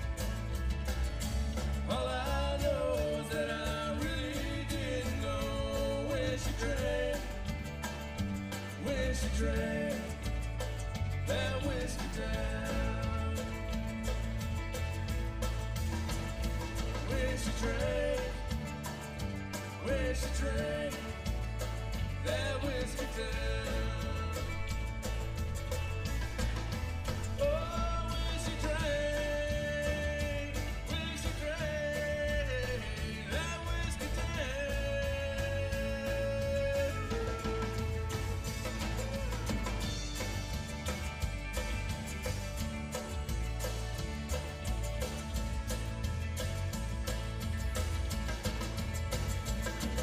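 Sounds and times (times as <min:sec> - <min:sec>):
banjo: 0:00.0 - 0:50.0
country band playing: 0:00.0 - 0:50.0.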